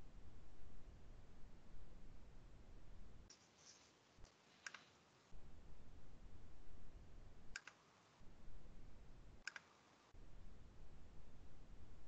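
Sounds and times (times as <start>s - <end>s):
faint low background rumble: 0.0s - 12.0s
computer mouse clicks: 4.3s - 5.0s, 7.5s - 7.9s, 9.4s - 9.9s.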